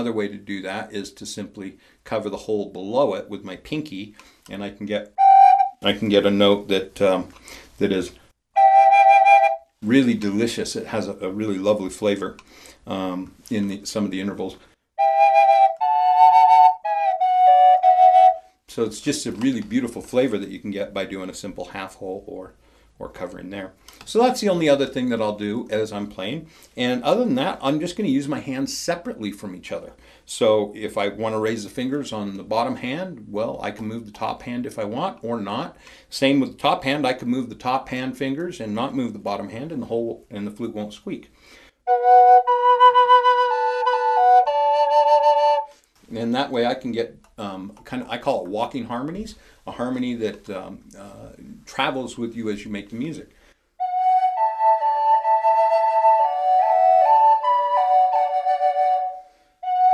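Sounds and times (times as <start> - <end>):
double flute playing harmony: 5.2 - 5.8, 8.6 - 9.7, 15.0 - 18.5, 41.9 - 45.7, 53.8 - 59.9.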